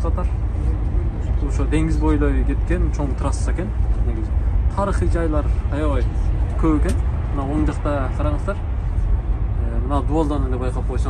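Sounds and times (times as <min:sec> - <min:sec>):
bus engine and road noise: 0:00.0 - 0:11.0.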